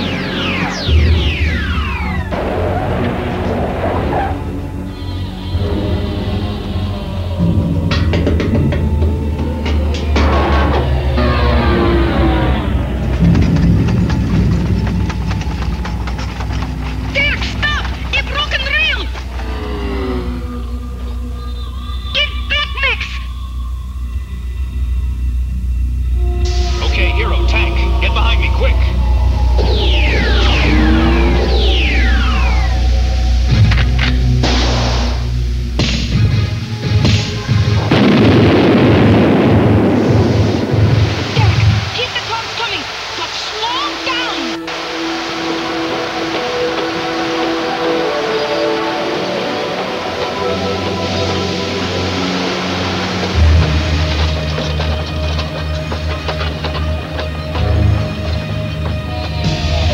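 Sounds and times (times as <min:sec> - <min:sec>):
dramatic background music: 0:00.0 - 0:41.9, 0:44.0 - 0:59.9
loud rumbling blast: 0:05.9 - 0:21.4, 0:22.2 - 0:43.5.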